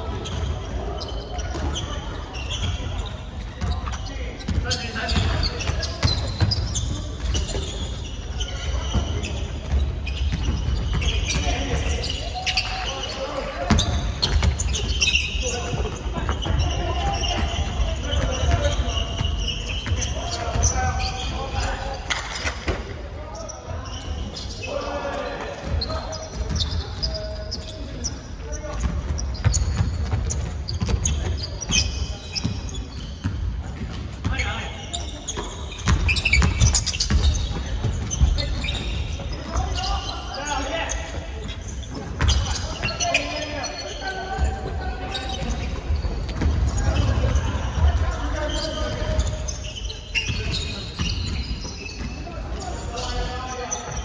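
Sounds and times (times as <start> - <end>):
sneaker squeaks: 0.0 - 54.0.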